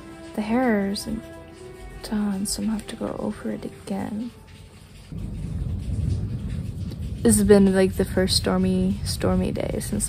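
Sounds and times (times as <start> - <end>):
thunder rolling: 4.6 - 10.0.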